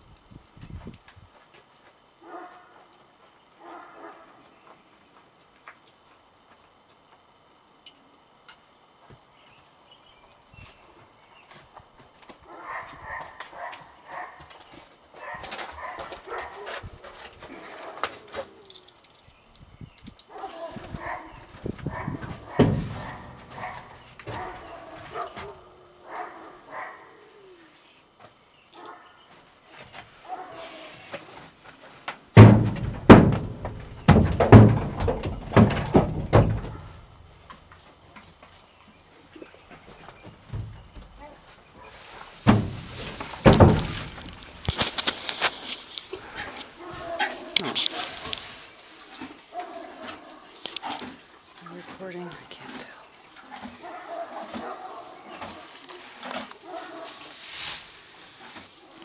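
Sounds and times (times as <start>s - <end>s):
horse hooves on trailer floor: 20.8s - 25.6s, 31.6s - 50.3s.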